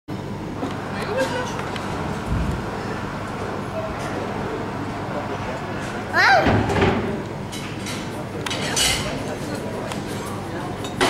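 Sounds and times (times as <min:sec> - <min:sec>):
low background rumble: 0:01.6 - 0:05.0.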